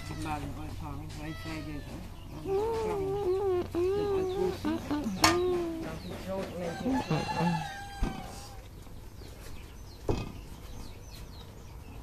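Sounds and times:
rooster crowing: 6.6 - 8.6.

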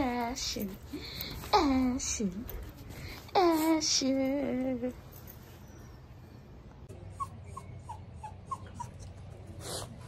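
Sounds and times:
puppy whining: 0.2 - 10.0.

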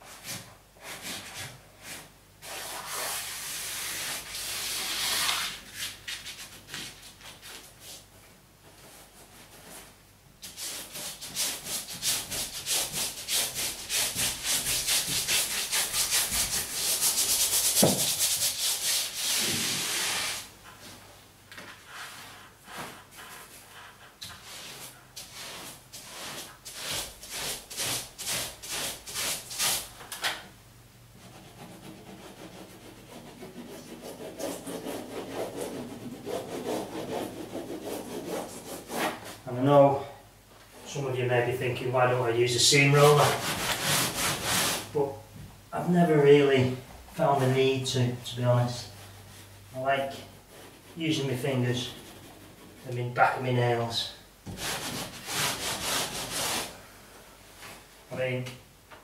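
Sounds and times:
brush strokes on wallpaper: 0.0 - 21.1, 21.7 - 29.9, 31.2 - 39.5, 42.4 - 45.0, 46.2 - 56.8
soft rubbing on wallpaper: 0.0 - 30.0, 31.1 - 39.6, 40.8 - 45.1, 46.1 - 58.4.

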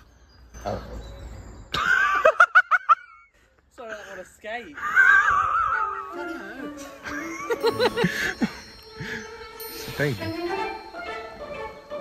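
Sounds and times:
person giggling: 7.0 - 8.6.

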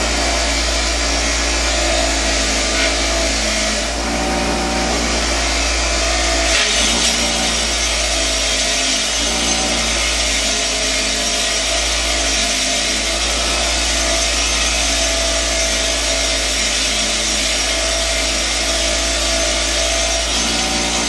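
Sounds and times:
bench grinder running: 0.0 - 21.0
wire brush scrubbing metal part: 0.0 - 21.0.

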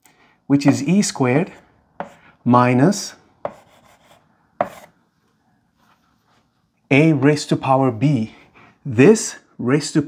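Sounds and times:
chalk scratching on blackboard: 1.4 - 2.3, 3.4 - 5.0
chalk tapping on blackboard: 1.5 - 2.2, 3.4 - 4.9.

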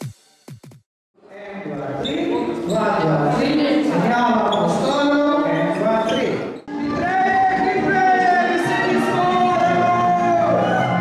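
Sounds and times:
people talking in echoing hall: 1.2 - 11.0
music with singer: 6.7 - 11.0.

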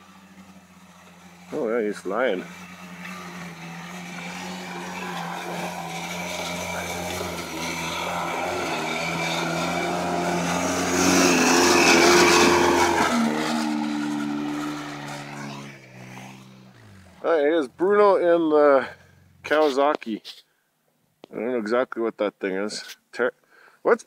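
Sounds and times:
quad engine passing by: 0.0 - 19.8.

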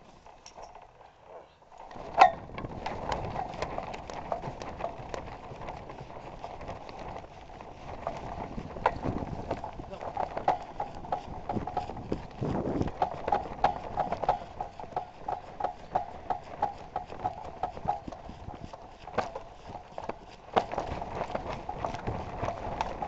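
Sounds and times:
hang glider frame knocking: 1.7 - 23.0.

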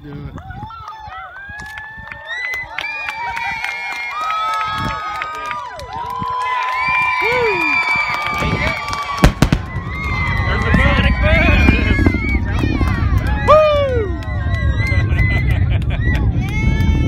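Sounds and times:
spectators shouting and whooping: 0.3 - 17.0
low rumble: 8.3 - 17.0
sonic boom bangs: 9.2 - 13.4.

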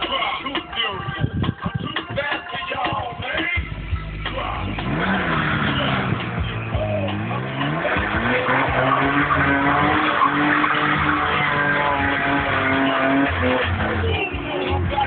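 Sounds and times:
car engine revving: 3.6 - 15.0
tyres squealing and skidding: 4.6 - 15.0.

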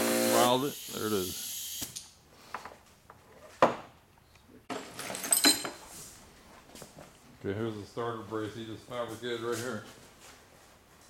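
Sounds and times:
metal parts clinking and rattling: 4.7 - 5.8.

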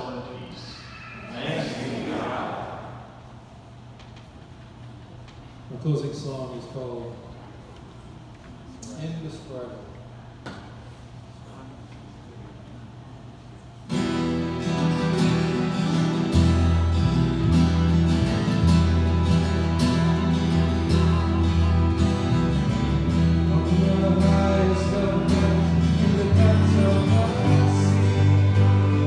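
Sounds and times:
strummed acoustic guitar: 13.9 - 29.0
steady bass line: 14.1 - 29.0.

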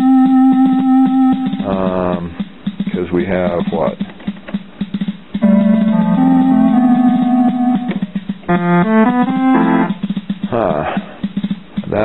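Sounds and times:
keyboard held chord: 0.0 - 1.7, 5.4 - 10.0
keyboard rhythm clicks: 0.0 - 12.0.

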